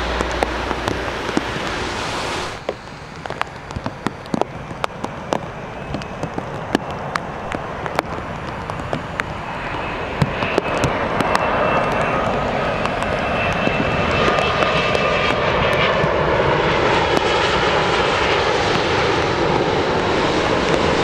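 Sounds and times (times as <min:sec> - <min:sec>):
faint high whine: 0:00.0 - 0:15.0
jet engine noise: 0:00.0 - 0:21.0.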